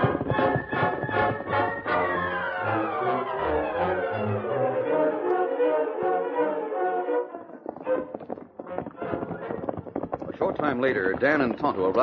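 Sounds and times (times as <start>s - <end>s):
horse hoofbeats: 0.0s - 4.5s, 6.9s - 12.0s
brass music: 0.0s - 9.2s.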